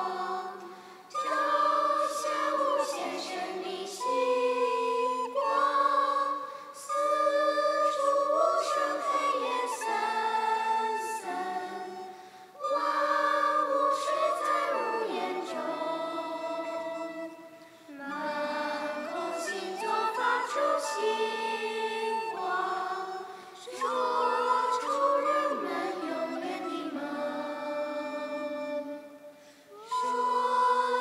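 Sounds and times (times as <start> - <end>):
women singing in harmony: 0.0 - 31.0.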